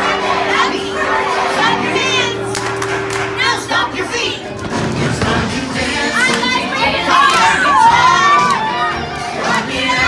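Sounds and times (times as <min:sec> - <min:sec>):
party dance music: 0:00.0 - 0:10.0
children shouting and singing: 0:06.0 - 0:10.0.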